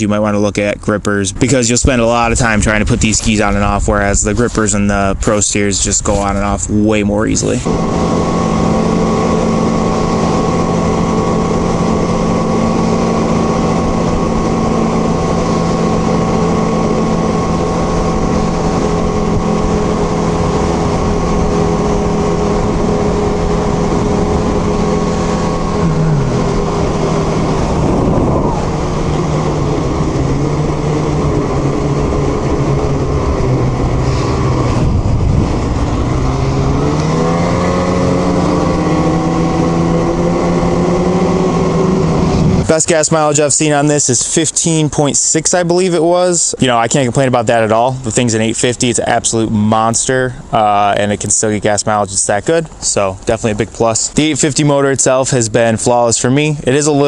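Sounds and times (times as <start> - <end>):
snowmobile engine running: 0.0 - 57.0
snowmobile track noise: 0.0 - 57.0
loud rush of wind: 1.3 - 43.8.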